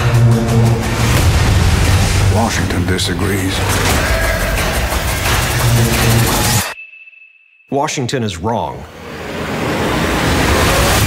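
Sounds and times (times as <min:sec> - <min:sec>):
dramatic music: 0:00.0 - 0:06.8, 0:08.9 - 0:11.0.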